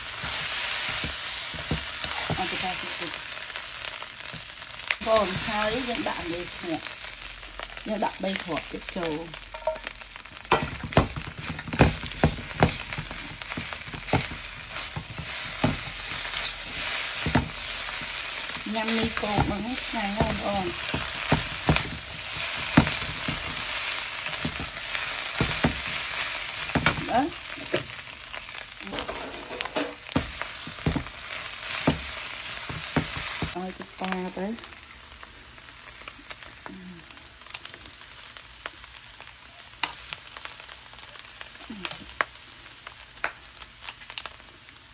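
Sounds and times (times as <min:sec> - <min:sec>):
noodles sizzling in a pan: 0:00.0 - 0:44.9.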